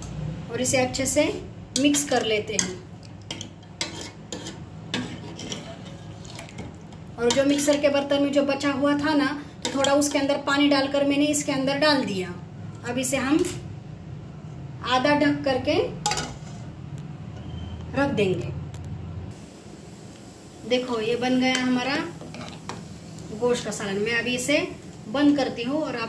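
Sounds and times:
metal spoon stirring curry: 1.8 - 8.2.

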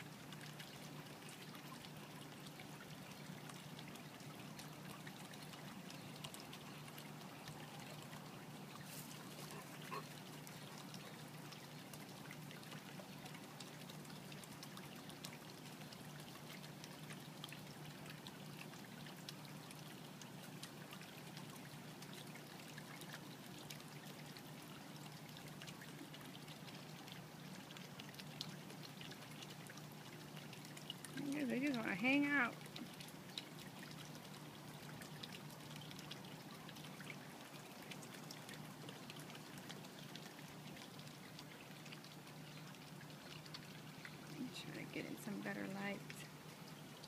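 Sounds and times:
low steady hum: 0.0 - 47.0
water trickling: 0.0 - 47.0.

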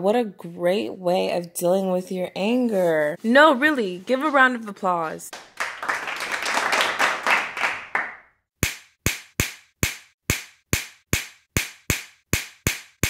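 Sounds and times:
hands clapping: 5.3 - 9.6.

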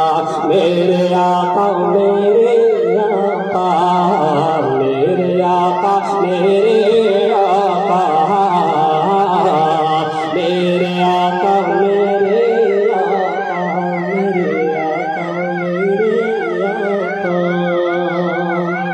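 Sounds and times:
man singing into a microphone: 0.0 - 18.9.

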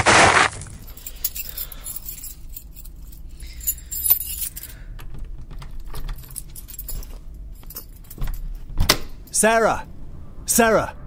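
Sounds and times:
keys jangling in lock: 0.7 - 9.4.

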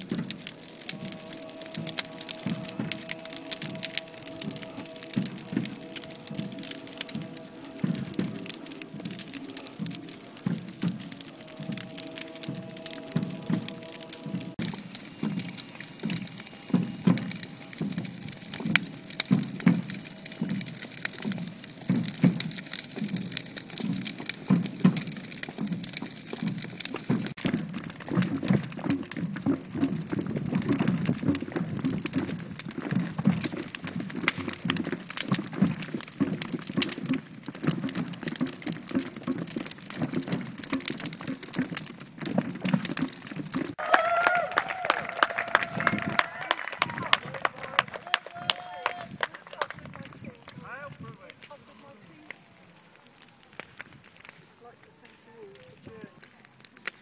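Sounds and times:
wood fire crackling: 0.0 - 57.0.

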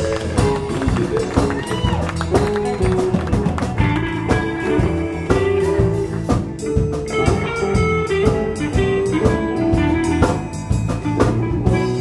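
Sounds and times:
drums: 0.0 - 12.0
electric bass: 0.0 - 12.0
electric guitar lead with bending notes: 0.0 - 12.0
keyboard: 0.0 - 12.0.

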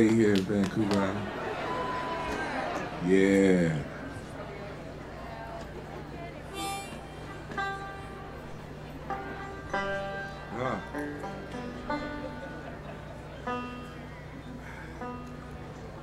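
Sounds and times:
steady low hum: 2.6 - 16.0
harmonica held notes: 6.4 - 16.0.

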